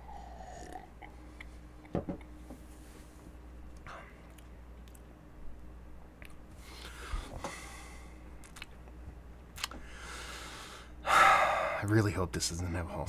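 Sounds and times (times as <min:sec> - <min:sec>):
man exhaling: 0:09.8 - 0:11.8.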